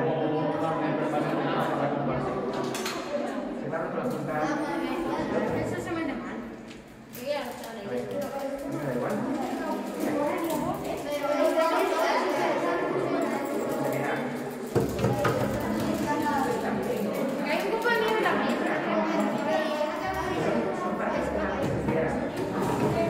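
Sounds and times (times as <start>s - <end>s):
children chattering: 0.0s - 23.0s.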